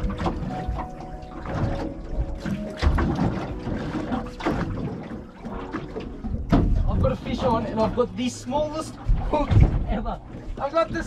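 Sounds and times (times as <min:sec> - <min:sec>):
water sloshing against boat hull: 0:00.0 - 0:11.0.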